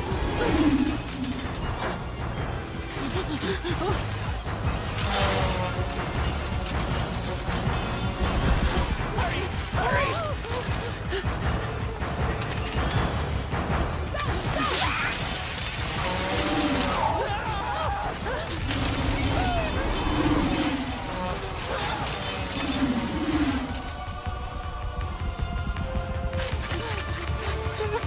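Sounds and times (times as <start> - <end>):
dramatic orchestral score: 0.0 - 28.0.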